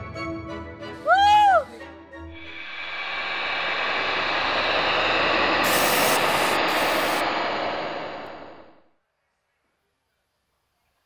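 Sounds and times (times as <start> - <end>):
whoosh riser effect: 2.3 - 8.9.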